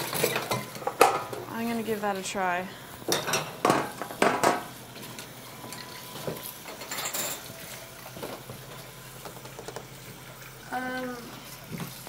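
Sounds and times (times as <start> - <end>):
baking trays and dishes clattering: 0.0 - 1.8, 3.0 - 9.9.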